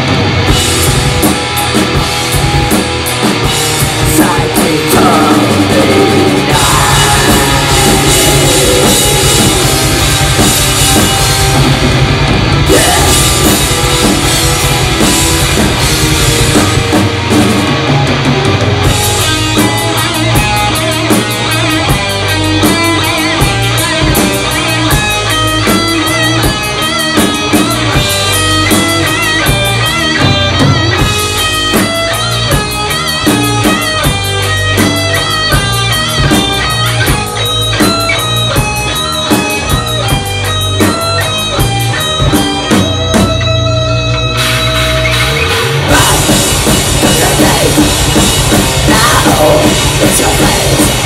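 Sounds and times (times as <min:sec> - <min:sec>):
bass guitar: 0:00.0 - 0:51.0
bending lead guitar line: 0:00.0 - 0:51.0
distorted electric guitars: 0:00.0 - 0:51.0
fast steady drumming: 0:00.0 - 0:51.0.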